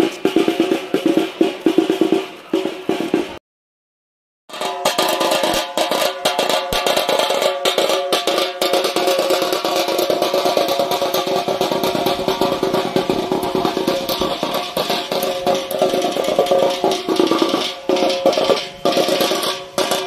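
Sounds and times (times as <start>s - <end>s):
double-headed drum beaten fast: 0.0s - 3.4s, 4.5s - 20.0s.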